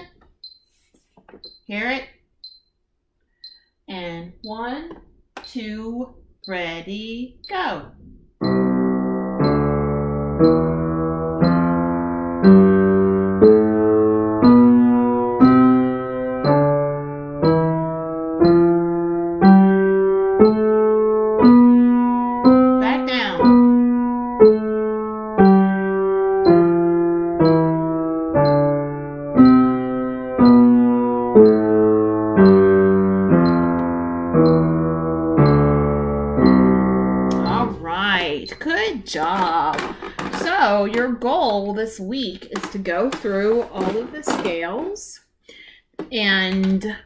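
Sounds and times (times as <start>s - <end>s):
woman talking: 1.7s - 2.2s, 3.9s - 8.0s, 22.8s - 23.4s, 37.3s - 45.2s, 46.0s - 47.0s
piano playing a scale: 8.4s - 38.6s.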